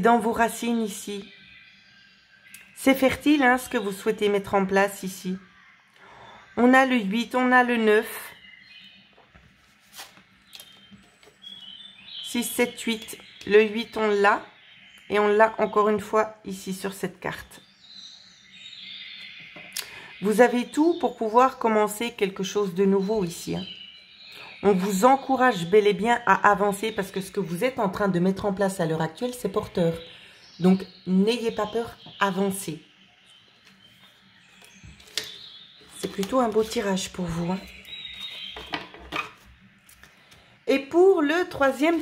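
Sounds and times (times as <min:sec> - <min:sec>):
cards rustling: 0:09.6 - 0:11.4.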